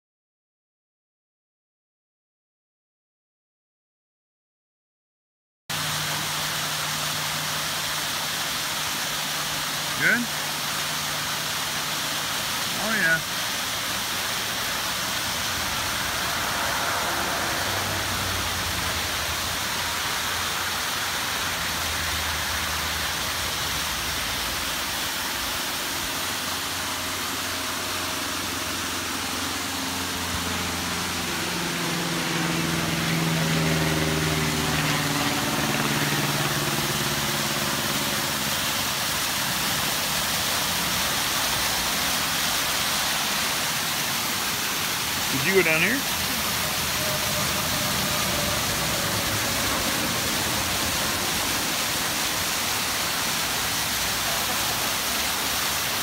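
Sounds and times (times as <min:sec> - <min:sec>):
waterfall pouring: 0:05.7 - 0:56.0.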